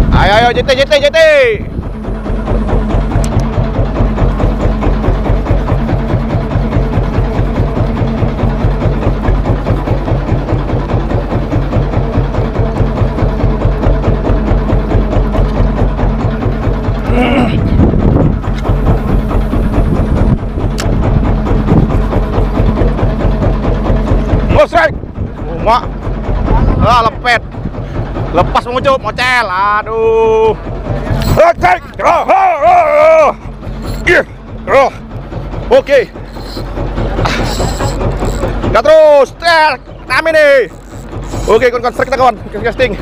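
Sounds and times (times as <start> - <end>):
background music with drum beat: 1.4 - 29.2.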